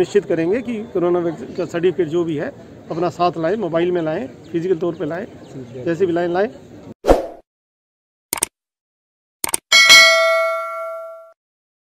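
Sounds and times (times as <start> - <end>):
notification bell chime: 9.7 - 11.4.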